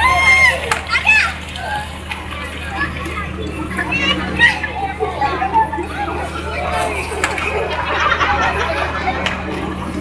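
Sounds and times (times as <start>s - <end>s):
children chattering: 0.0s - 10.0s
children shouting: 0.0s - 10.0s
steady low hum: 0.0s - 10.0s.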